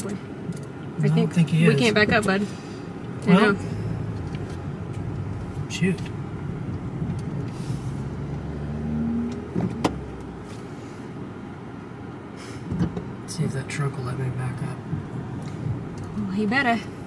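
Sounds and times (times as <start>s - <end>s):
car rumble from inside cabin: 0.0s - 17.0s.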